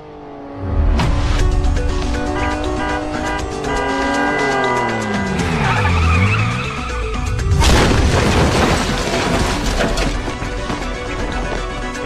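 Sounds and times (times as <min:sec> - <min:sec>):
background music: 0:00.6 - 0:12.0
tyres skidding squeal: 0:03.7 - 0:07.6
motorcycle crash: 0:07.4 - 0:10.5.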